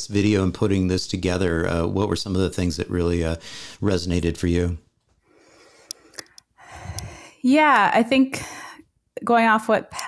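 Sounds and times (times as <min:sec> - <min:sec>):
person breathing in: 0:03.4 - 0:03.8, 0:05.3 - 0:07.4.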